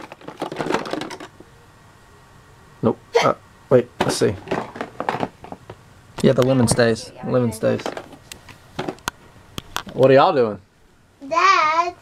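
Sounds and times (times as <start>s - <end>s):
plastic toy pieces clattering: 0.0s - 1.4s, 4.0s - 5.6s, 7.7s - 8.2s.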